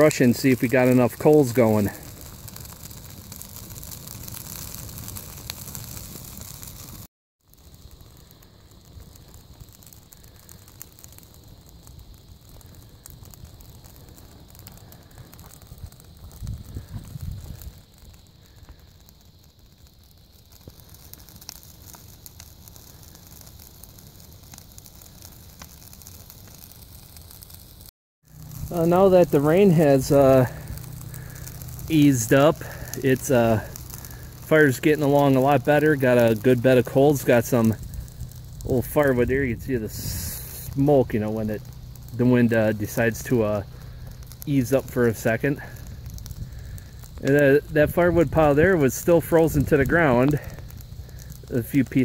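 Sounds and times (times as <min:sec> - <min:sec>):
wood fire crackling: 0:00.0 - 0:52.0
low rumble: 0:28.3 - 0:34.5, 0:37.1 - 0:42.2.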